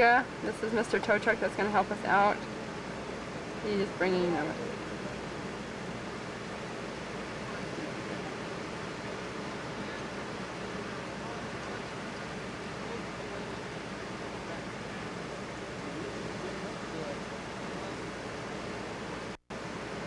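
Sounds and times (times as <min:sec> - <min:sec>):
wind: 0:00.0 - 0:20.0.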